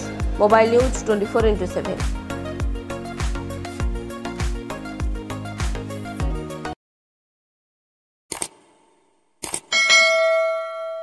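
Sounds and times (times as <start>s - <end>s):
bright bell ding: 9.7s - 11.0s.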